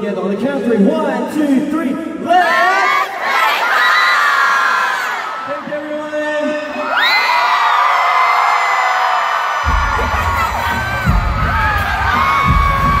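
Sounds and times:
crowd screaming and cheering: 2.6s - 13.0s
deep bass hits: 9.7s - 13.0s
heavy bass music: 9.7s - 13.0s.

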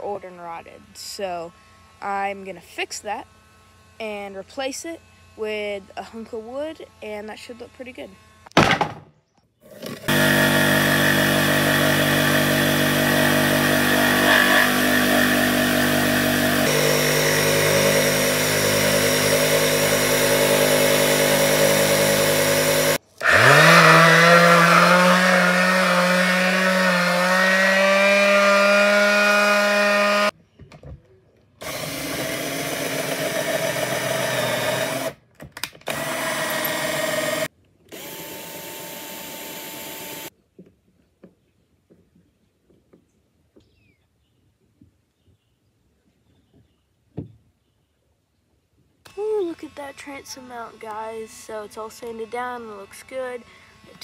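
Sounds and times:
power tool motor: 9.6s - 30.4s, 31.6s - 40.3s, 49.1s - 54.0s
sheet sander on wood: 9.8s - 30.3s, 31.6s - 35.2s, 35.9s - 40.3s, 49.1s - 54.0s.

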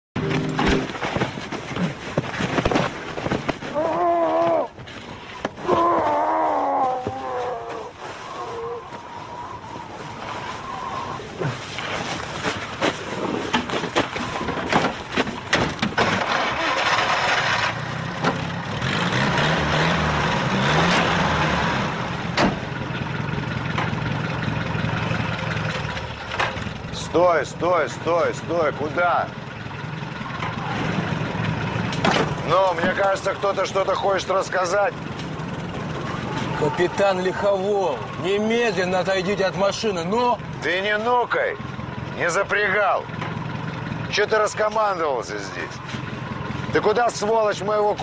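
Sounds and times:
scuffling: 0.2s - 15.8s
raised voices: 5.6s - 11.6s, 35.8s - 39.4s
car engine idling: 21.4s - 48.0s.

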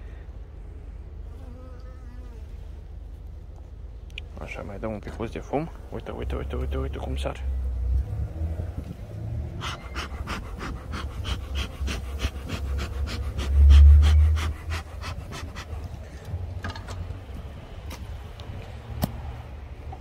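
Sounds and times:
bellows puffs of air: 9.5s - 16.4s.

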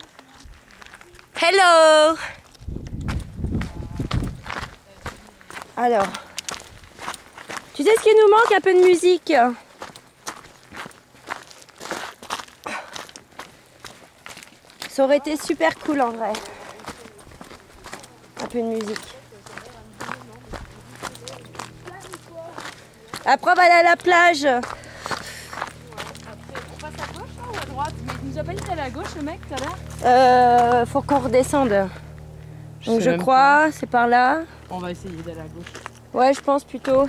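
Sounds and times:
footsteps on stony trail: 0.0s - 37.0s.

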